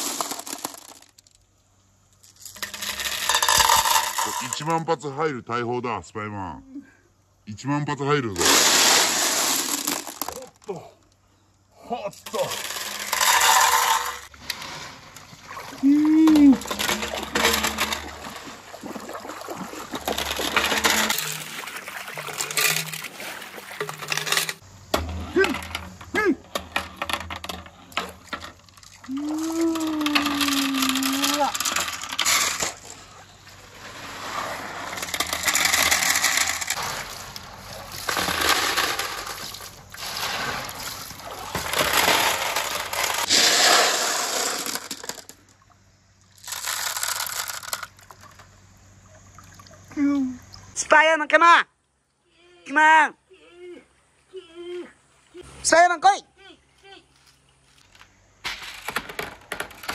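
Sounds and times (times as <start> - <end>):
marbles rattling down wooden run: 0.0 - 1.4, 2.2 - 4.8, 8.4 - 10.6, 12.3 - 14.3, 16.5 - 18.4, 20.0 - 21.6, 23.8 - 24.6, 29.8 - 32.8, 34.9 - 37.1, 38.0 - 45.4, 46.4 - 48.4.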